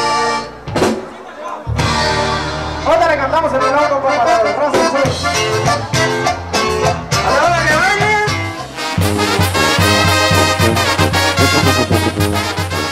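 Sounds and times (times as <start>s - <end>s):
regional band music with horns: 0.0s - 12.9s
bouncing bass line: 9.0s - 12.9s.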